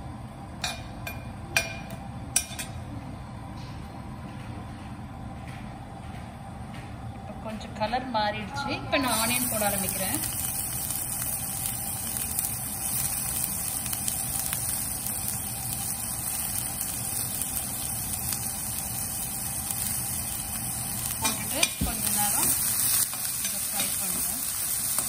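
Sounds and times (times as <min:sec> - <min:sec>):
onions sizzling in hot oil: 0:09.0 - 0:25.0.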